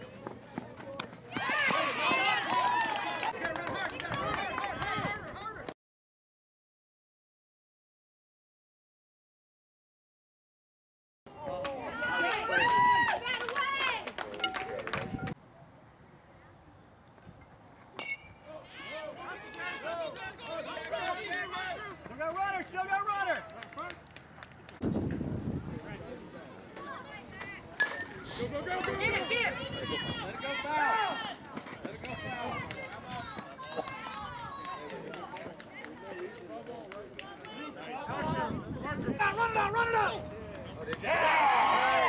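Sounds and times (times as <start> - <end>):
people shouting and cheering: 0.0 - 5.7, 11.3 - 15.4, 18.0 - 24.0, 26.8 - 42.0
metal bat ping: 18.0 - 18.4.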